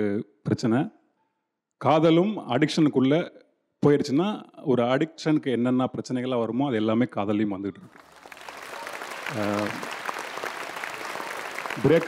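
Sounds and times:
audience applauding: 0:07.8 - 0:12.0
man talking: 0:09.3 - 0:09.9, 0:11.8 - 0:12.0.

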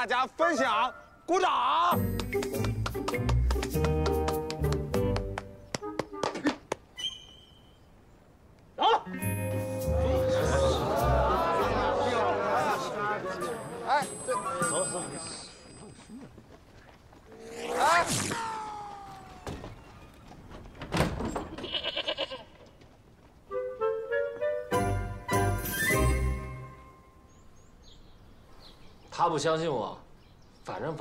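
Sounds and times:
man shouting: 0:08.8 - 0:09.1
goat or sheep bleating: 0:21.5 - 0:22.6.

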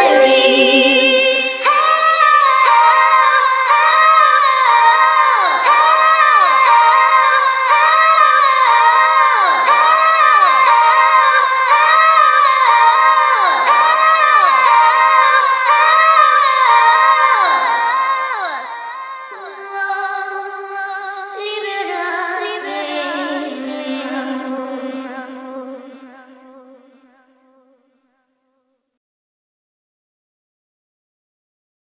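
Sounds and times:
high-pitched female vocals: 0:00.0 - 0:02.4
sped-up a cappella vocal note: 0:00.0 - 0:27.8.

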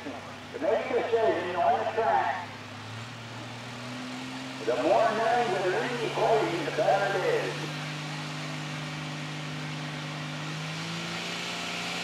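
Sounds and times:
tractor engine idling: 0:00.0 - 0:09.9.

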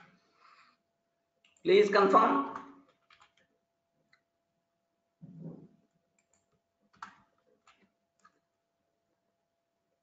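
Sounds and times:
computer keyboard and mouse clicks: 0:02.5 - 0:04.3, 0:05.8 - 0:08.6.

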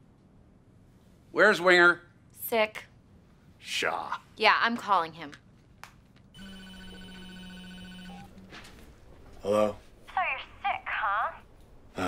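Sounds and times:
phone ringing tone: 0:06.4 - 0:08.7.

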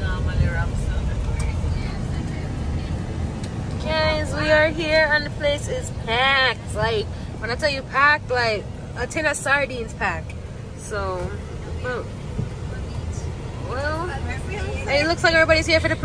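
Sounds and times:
people talking: 0:00.0 - 0:16.0
vehicle rumble from inside cabin: 0:00.0 - 0:16.0.

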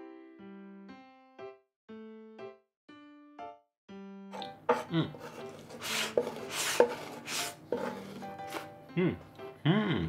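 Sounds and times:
wooden spoon scraping wooden plate: 0:04.4 - 0:08.7.

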